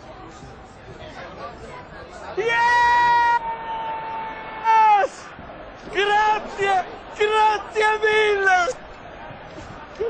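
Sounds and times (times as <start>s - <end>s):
man yelling: 2.4s - 5.2s.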